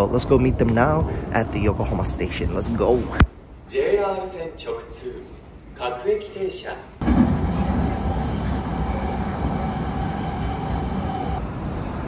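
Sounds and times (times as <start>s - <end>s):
electric train rumbling: 7.0s - 12.0s
held whine: 7.0s - 12.0s.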